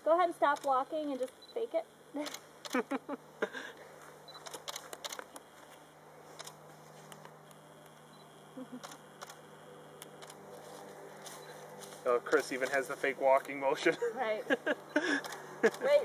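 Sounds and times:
low steady hum: 0.0 - 16.0
camera clicks: 0.5 - 1.5, 2.2 - 2.9, 4.3 - 5.4, 6.4 - 8.1, 8.7 - 9.4, 10.0 - 10.4, 12.3 - 12.8, 15.2 - 15.9.

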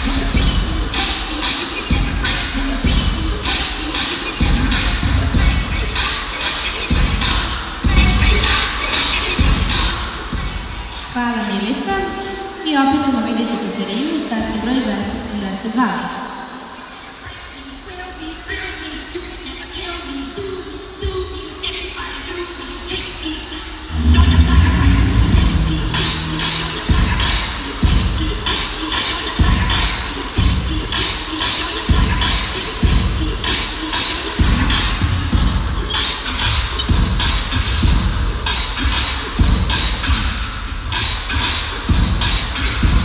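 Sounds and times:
hip-hop track over loudspeakers: 0.0 - 43.0.

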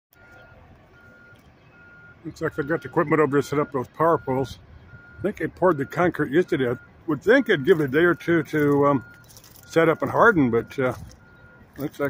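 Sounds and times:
backup alarm beeping: 0.1 - 12.0.

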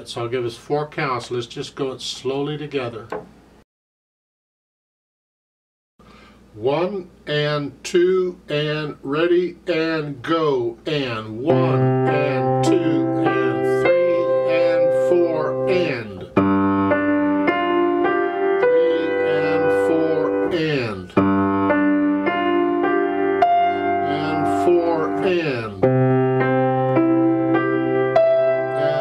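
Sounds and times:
slow chordal piano playing: 11.1 - 29.0.

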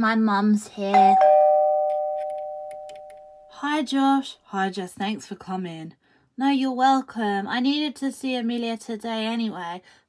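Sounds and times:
ding-dong doorbell chime: 1.0 - 3.5.

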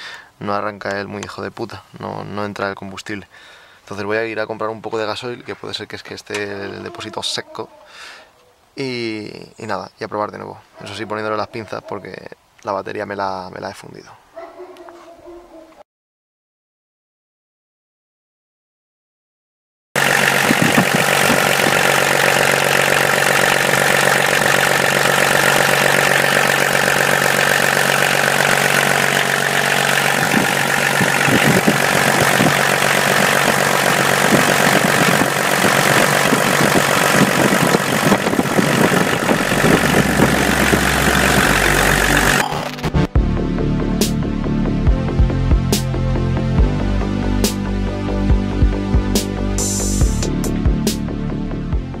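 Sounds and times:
diesel engine idling: 20.0 - 42.5
electronic music: 39.4 - 51.9.

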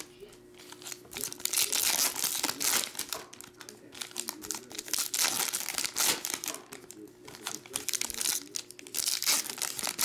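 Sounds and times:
foil wrapper tearing and crinkling: 0.7 - 10.0.

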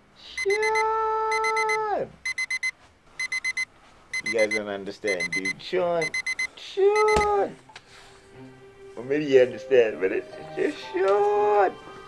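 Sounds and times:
digital alarm clock beeping: 0.4 - 7.4.

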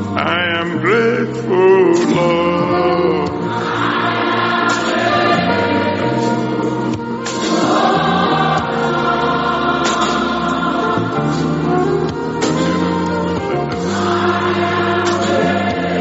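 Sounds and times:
choir singing gospel: 0.0 - 16.0.

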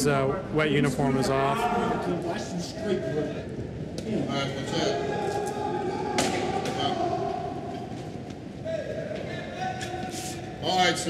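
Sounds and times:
indistinct men's voices: 0.0 - 11.0.

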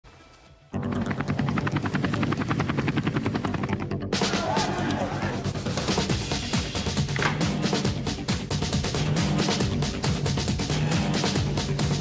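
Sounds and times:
music: 0.0 - 12.0
helicopter rotor chopping: 0.8 - 4.6.

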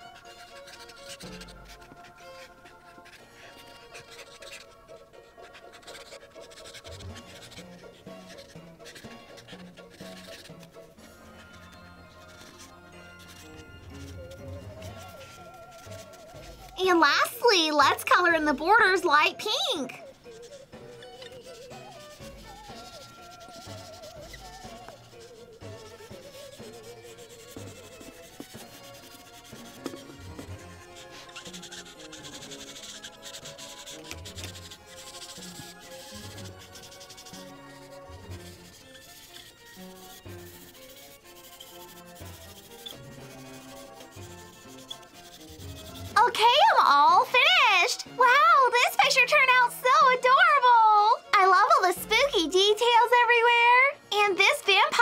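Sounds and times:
marker scratching on paper: 0.0 - 50.2.

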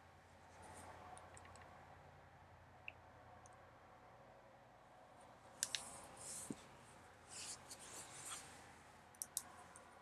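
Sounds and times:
faint soft rustles: 5.8 - 8.9.

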